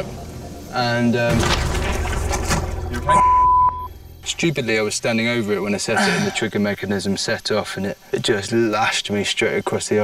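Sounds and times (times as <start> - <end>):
censor bleep: 3.1 - 4.0.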